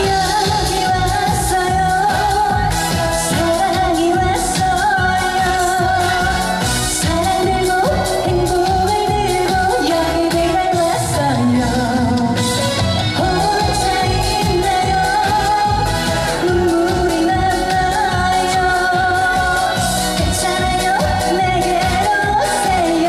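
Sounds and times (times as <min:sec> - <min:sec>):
backing track with steady beat: 0:00.0 - 0:23.0
woman singing pop song: 0:00.0 - 0:23.0.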